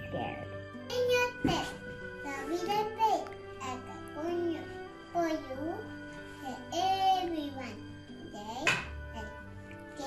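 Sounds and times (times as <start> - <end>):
soft background music: 0.0 - 10.0
girl speaking: 0.9 - 9.4.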